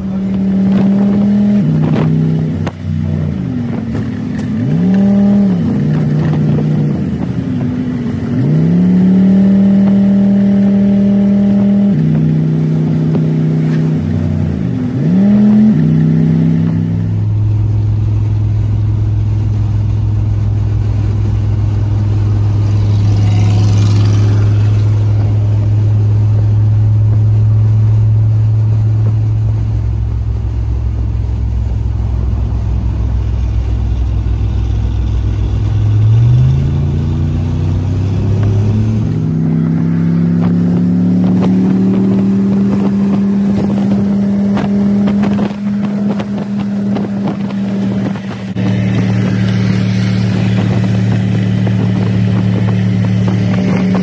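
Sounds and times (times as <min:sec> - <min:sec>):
truck engine shifting gears: 0:00.0 - 0:54.0.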